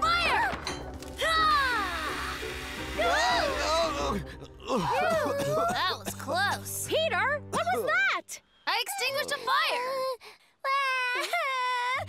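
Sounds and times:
cartoon background music: 0:00.0 - 0:08.4.

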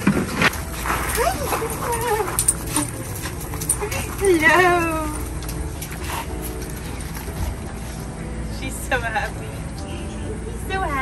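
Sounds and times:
dog whining: 0:01.0 - 0:05.4.

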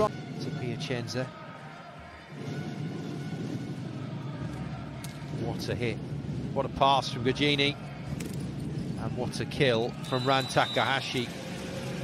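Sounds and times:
crowd din in an arena: 0:00.0 - 0:12.0.

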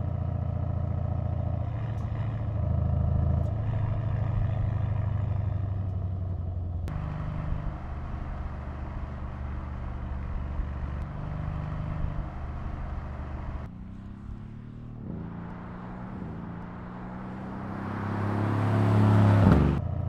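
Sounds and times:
car engine running: 0:00.0 - 0:19.8.

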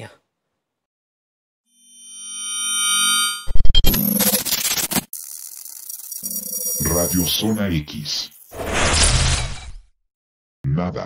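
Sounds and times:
person announcing: 0:06.8 - 0:08.3.

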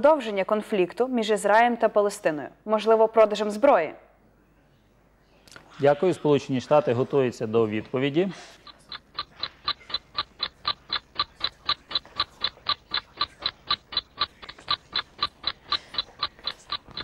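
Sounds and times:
ticking countdown timer: 0:08.6 - 0:17.0.

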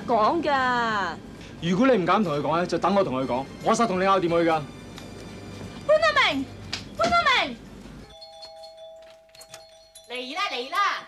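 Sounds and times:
two-tone doorbell ringing: 0:08.0 - 0:11.0.

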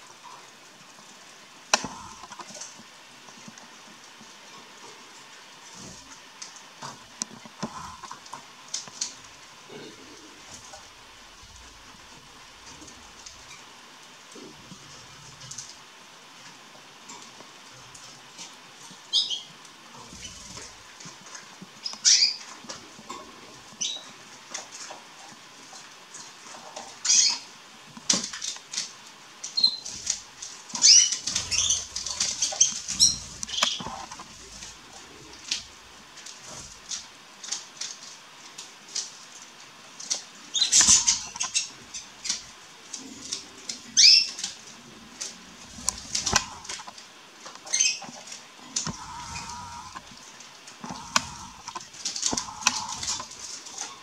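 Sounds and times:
soft clicks and rustles: 0:00.1 - 0:54.0
young canaries chirping: 0:30.7 - 0:34.2, 0:40.5 - 0:42.4, 0:48.9 - 0:50.1, 0:50.8 - 0:53.4.

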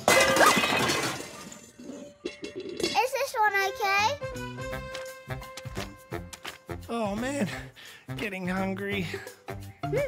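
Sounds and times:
metal pots and pans crashing: 0:00.0 - 0:03.3.

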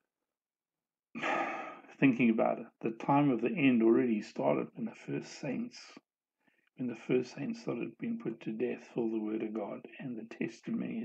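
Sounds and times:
man sighing: 0:01.2 - 0:01.8.

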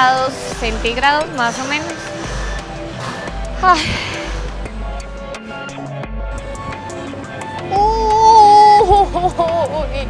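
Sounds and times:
background music with ticking: 0:00.0 - 0:10.0
woman's long high cry: 0:07.7 - 0:09.1.

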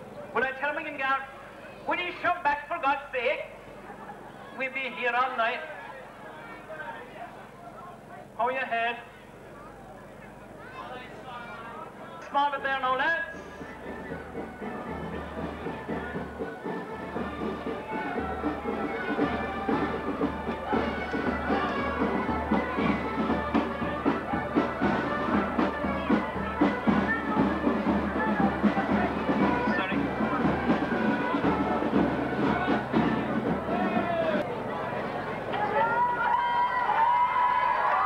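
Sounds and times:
crowd noise: 0:00.0 - 0:38.0
drums beating: 0:11.1 - 0:34.6
marching band playing: 0:12.5 - 0:34.5.

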